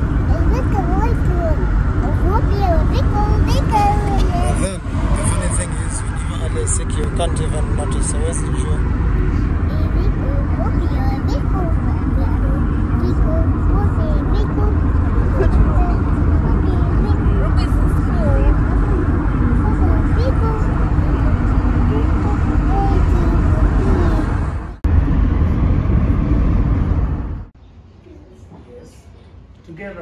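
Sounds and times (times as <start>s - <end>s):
car road and engine rumble: 0.0s - 30.0s.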